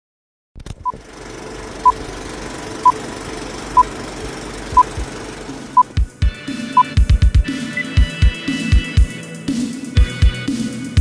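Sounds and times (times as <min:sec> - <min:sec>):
steady low hum: 0:00.8 - 0:06.2.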